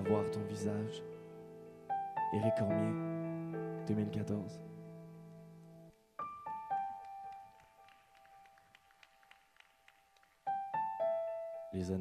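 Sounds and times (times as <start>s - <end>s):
piano notes: 0.0s - 12.0s.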